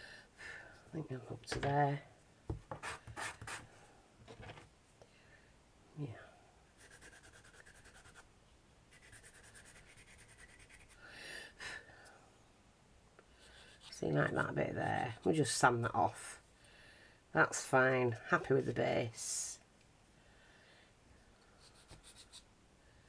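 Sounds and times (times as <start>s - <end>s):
person talking: 0.9s - 2.1s, 13.9s - 16.4s, 17.3s - 19.7s
file and sandpaper scratching clay: 2.7s - 3.7s, 6.8s - 8.3s, 8.9s - 11.0s, 13.4s - 14.0s, 21.6s - 22.5s.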